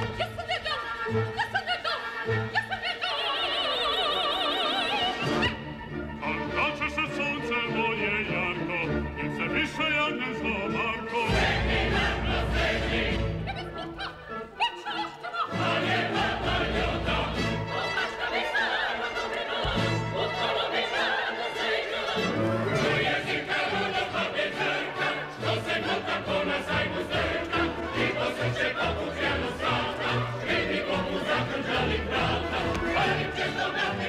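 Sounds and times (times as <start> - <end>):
opera chorus with orchestra: 0.0 - 34.0.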